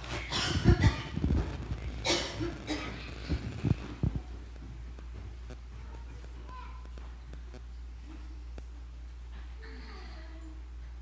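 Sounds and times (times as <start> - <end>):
steady low hum: 0.0 - 11.0
footsteps on carpet: 3.2 - 9.6.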